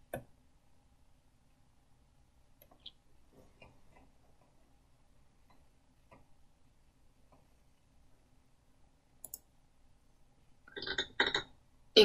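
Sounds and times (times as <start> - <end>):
recorded audio playing: 0.0 - 12.0.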